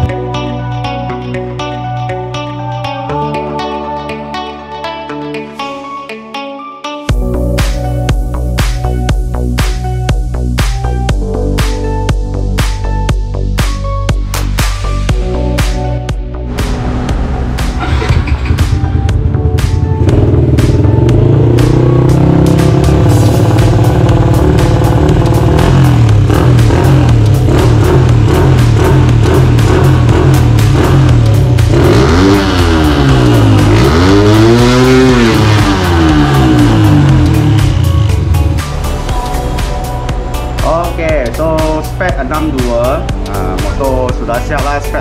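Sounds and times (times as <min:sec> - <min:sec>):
background music: 0:00.0 - 0:45.0
motorcycle engine revving: 0:16.5 - 0:40.3.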